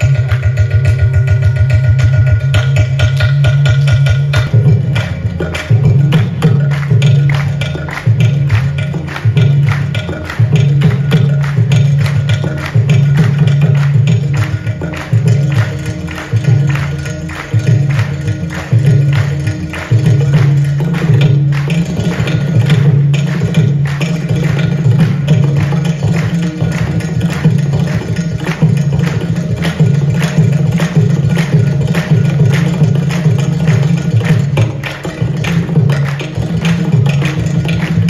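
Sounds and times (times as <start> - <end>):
percussion ensemble playing fast rhythm: 0.0 - 38.0.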